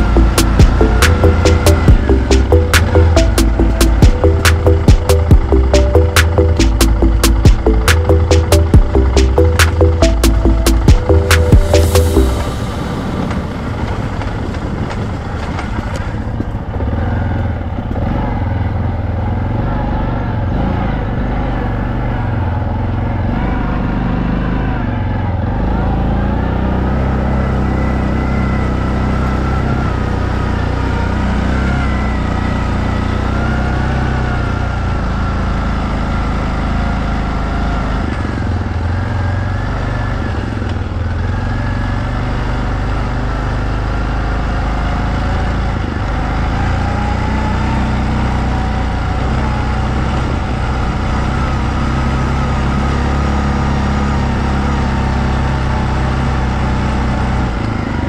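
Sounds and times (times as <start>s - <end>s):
atv engine running: 0.0s - 58.0s.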